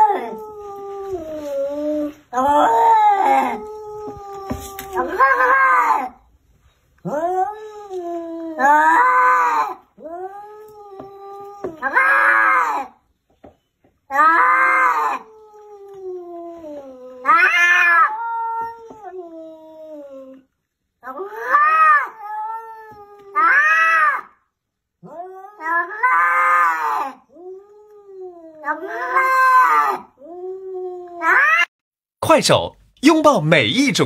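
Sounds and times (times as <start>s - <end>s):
cats yowling: 0.0s - 6.3s, 7.0s - 13.0s, 14.1s - 24.4s, 25.0s - 31.7s
cat moaning: 14.1s - 20.4s, 25.0s - 31.6s.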